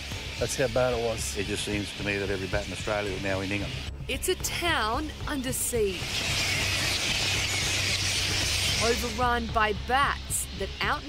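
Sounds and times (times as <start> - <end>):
fruit bats screeching and chattering: 0.0 - 11.0.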